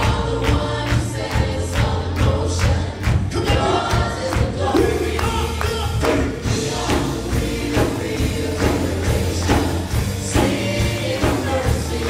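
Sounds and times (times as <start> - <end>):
bass: 0.0 - 12.0
drum kit beat: 0.0 - 12.0
voices singing together: 0.0 - 12.0.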